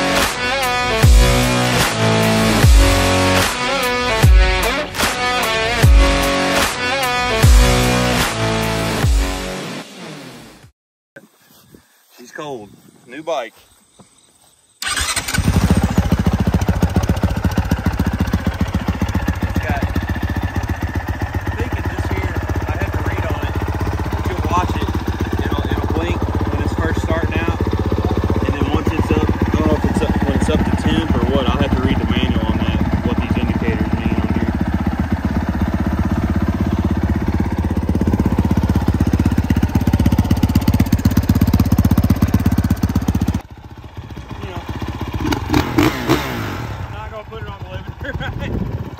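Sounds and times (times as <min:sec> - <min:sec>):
motorcycle engine starting and idling: 0:00.0 - 0:04.8, 0:14.8 - 0:48.9.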